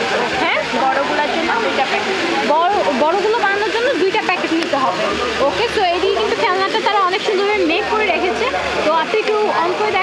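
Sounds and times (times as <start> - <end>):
people talking: 0.0 - 10.0
steady background din: 0.0 - 10.0.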